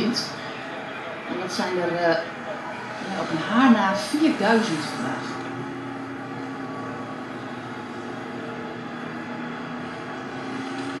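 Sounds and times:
drone of vehicle engines: 0.0s - 11.0s.

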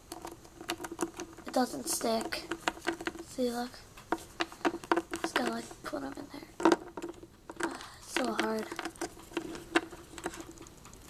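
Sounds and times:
plastic toy clicks and taps: 0.0s - 3.3s, 4.0s - 11.0s.

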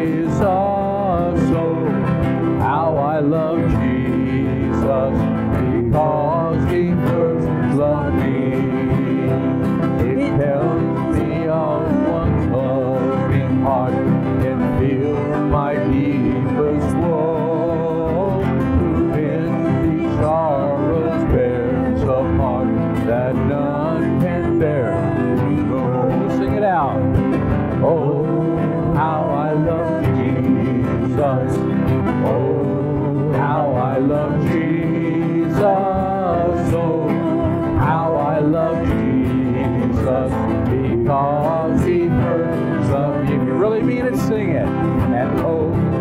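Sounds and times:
acoustic guitar strumming: 0.0s - 46.0s
man singing a hymn: 0.0s - 46.0s.

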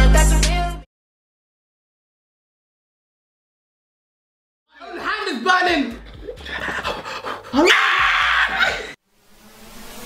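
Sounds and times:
man crying out in pain: 7.5s - 9.0s.

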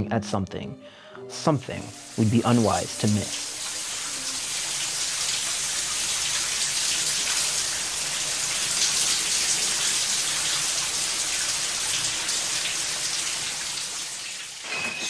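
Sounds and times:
shower water spray hissing: 1.8s - 14.6s.

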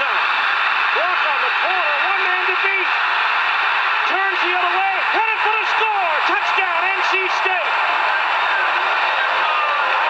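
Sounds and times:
sports announcer calling play: 0.0s - 7.8s
stadium crowd noise: 0.0s - 10.0s.

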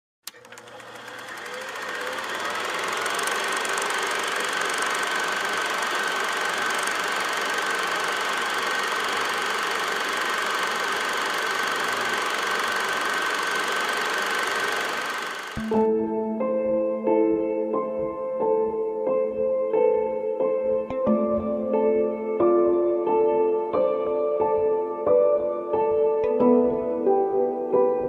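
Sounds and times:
click: 0.2s - 2.5s
machine running with high whine: 0.3s - 15.9s.

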